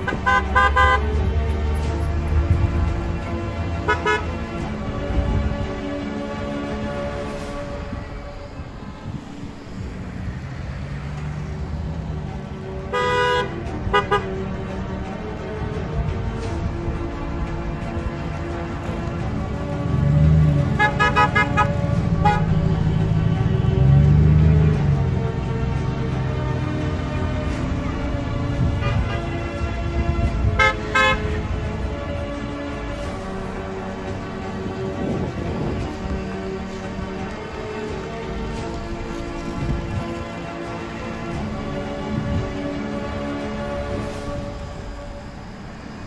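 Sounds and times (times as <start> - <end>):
car horn honking: 0.0 - 1.1, 3.8 - 4.3, 12.9 - 14.3, 20.8 - 22.6, 30.6 - 31.4
rumble of cars passing: 0.0 - 46.0.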